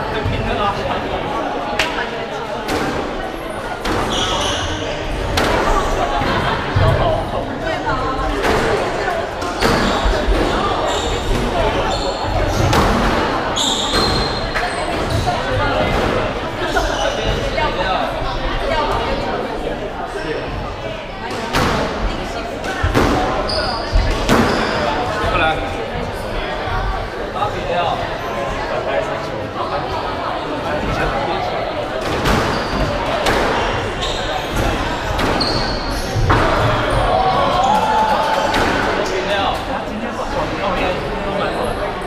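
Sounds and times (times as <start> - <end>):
shoe squeak on wooden floor: 3.9 - 4.8, 9.6 - 12.7, 13.6 - 15.3, 16.7 - 17.5, 23.5 - 24.9, 32.3 - 37.8.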